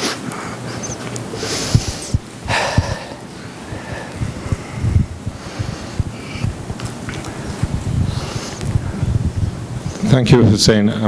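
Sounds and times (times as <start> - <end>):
man blowing his nose: 1.3 - 6.6
low thumps: 1.6 - 10.1.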